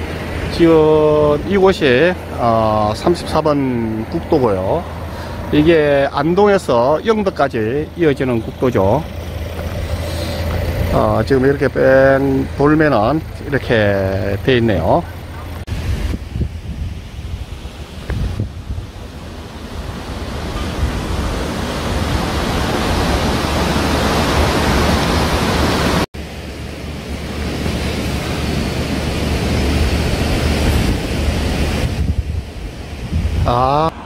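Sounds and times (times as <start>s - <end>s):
wind buffeting microphone: 0.0s - 26.0s, 27.2s - 34.0s.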